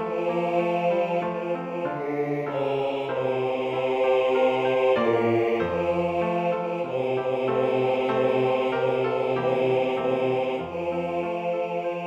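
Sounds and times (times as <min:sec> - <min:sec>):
choir singing: 0:00.0 - 0:12.0
piano accompaniment: 0:00.0 - 0:12.0.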